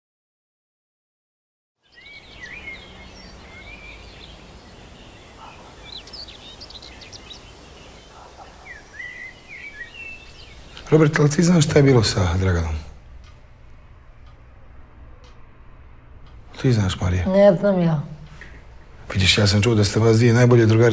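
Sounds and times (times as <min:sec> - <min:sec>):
faint outdoor background: 0:01.8 - 0:20.9
songbirds chirping: 0:01.8 - 0:20.9.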